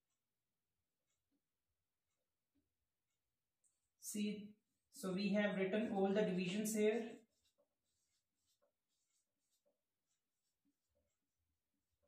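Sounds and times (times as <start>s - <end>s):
marker squeaking on whiteboard: 7.0s - 12.0s.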